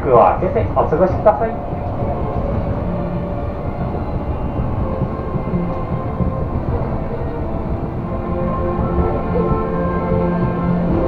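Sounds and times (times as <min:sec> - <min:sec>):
faint hum of tones: 0:00.0 - 0:11.0
monorail rumbling in motion: 0:00.0 - 0:11.0.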